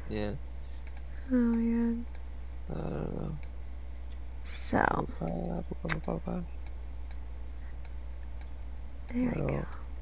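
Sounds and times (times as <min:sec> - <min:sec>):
faint sharp clicks: 0:00.8 - 0:02.2.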